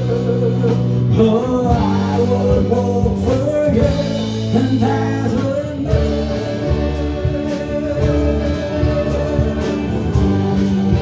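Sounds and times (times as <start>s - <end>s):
bass guitar: 0.0s - 11.0s
drums: 0.0s - 11.0s
electric lead guitar: 0.0s - 11.0s
keyboard: 0.0s - 11.0s.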